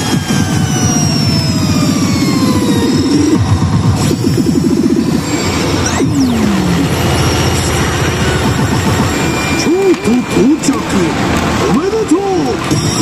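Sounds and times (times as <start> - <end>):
electronic din: 0.0 - 13.0.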